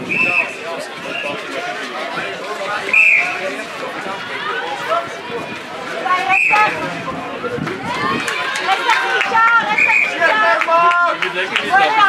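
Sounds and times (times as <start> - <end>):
people chattering and calling out: 0.0 - 12.0.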